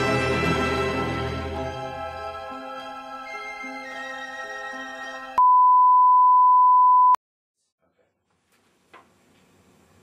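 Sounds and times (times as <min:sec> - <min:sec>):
background music with held chords: 0:00.0 - 0:05.4
steady electronic beep: 0:05.4 - 0:07.2.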